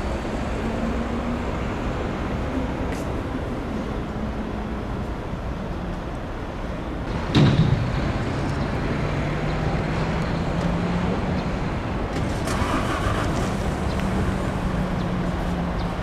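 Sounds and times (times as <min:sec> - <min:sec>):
vehicle engine humming: 0:00.0 - 0:16.0.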